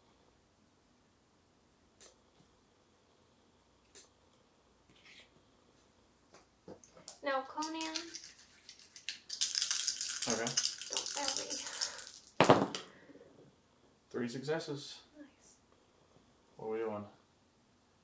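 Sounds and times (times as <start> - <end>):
dice rattling in hand: 7.6 - 12.4
dice clattering on table: 7.6 - 12.9.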